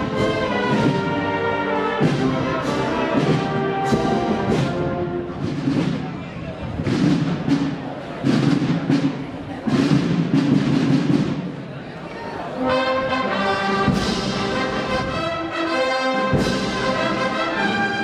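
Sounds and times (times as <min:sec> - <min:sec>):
wind band playing a march: 0:00.0 - 0:11.5, 0:12.4 - 0:18.0
drum strokes: 0:00.0 - 0:11.8, 0:13.3 - 0:15.3, 0:16.2 - 0:18.0.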